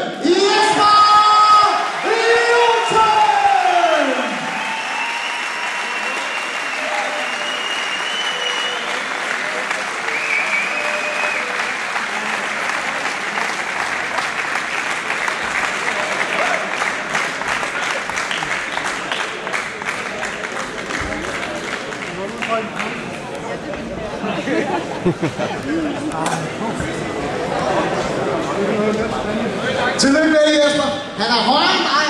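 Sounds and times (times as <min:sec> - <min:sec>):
crowd applauding: 0:00.2 - 0:28.6.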